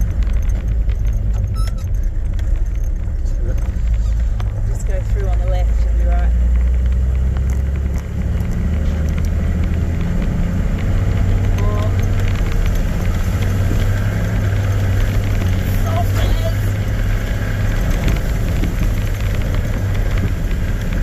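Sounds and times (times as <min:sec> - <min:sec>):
engine and tyre drone: 0:00.0 - 0:21.0
small rattles and clicks: 0:00.0 - 0:21.0.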